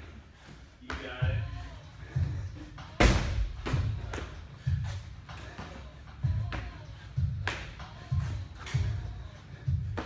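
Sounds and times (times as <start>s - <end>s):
music with steady bass beat: 1.0s - 10.0s.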